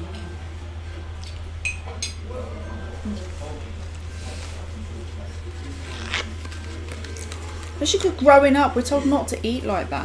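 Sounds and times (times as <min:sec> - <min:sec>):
faint low speech: 0:00.0 - 0:09.3
low electrical hum: 0:00.0 - 0:10.0.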